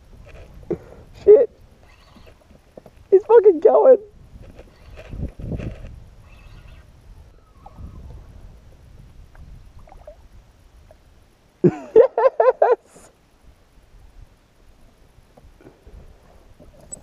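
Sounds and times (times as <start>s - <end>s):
faint wind: 0.0s - 17.0s
water noise: 9.0s - 11.2s.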